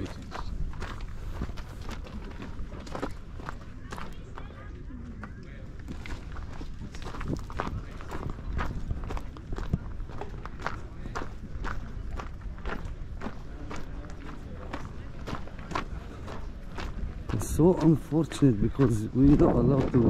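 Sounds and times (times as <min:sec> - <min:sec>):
footsteps on gravel: 0:00.0 - 0:04.5, 0:05.7 - 0:20.0.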